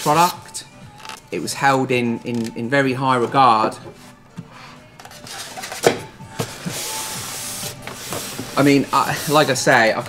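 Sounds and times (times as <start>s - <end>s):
foam scraping across desk: 6.4s - 10.0s.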